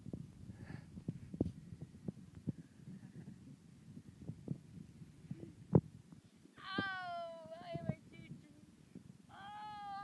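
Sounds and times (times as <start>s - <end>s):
wind buffeting microphone: 0.0s - 9.9s.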